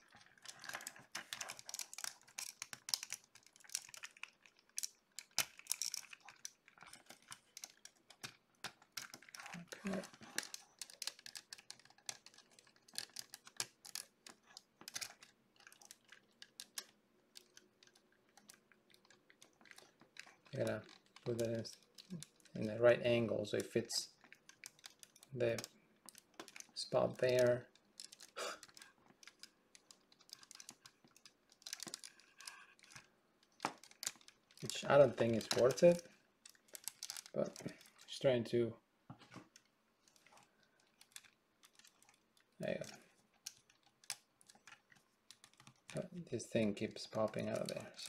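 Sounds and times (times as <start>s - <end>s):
plastic parts clicking and rattling: 0.0s - 38.4s, 39.1s - 48.0s.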